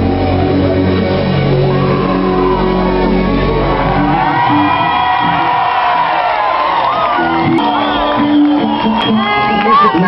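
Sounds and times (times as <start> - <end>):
live rock band: 0.0 - 10.0
audience cheering and whooping: 1.4 - 10.0.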